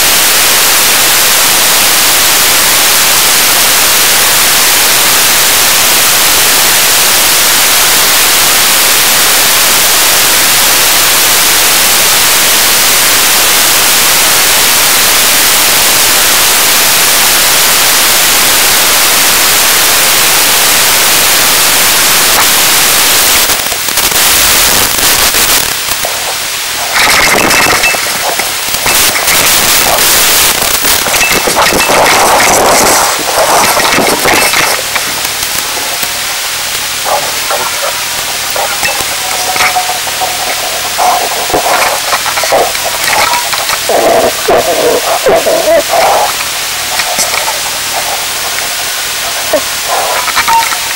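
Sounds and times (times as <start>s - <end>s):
radio crackling and popping: 0.0s - 50.9s
radio static hiss: 0.0s - 50.9s.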